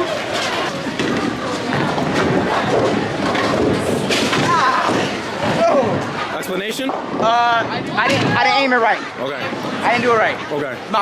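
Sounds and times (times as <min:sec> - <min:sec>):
bowling alley din: 0:00.0 - 0:10.5
bowling ball thudding and rolling: 0:00.7 - 0:06.2.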